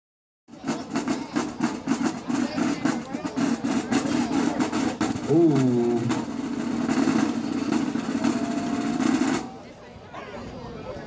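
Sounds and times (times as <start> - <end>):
drumline drum roll: 0.5 - 9.6.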